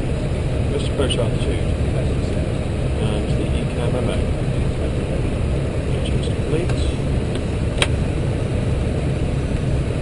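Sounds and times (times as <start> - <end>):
cockpit airflow and engine noise: 0.0 - 10.0.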